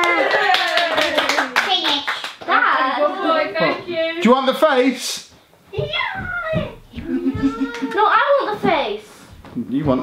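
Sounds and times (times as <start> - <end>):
voices cheering: 0.0 - 1.6
hand clapping: 0.0 - 2.5, 7.0 - 8.0.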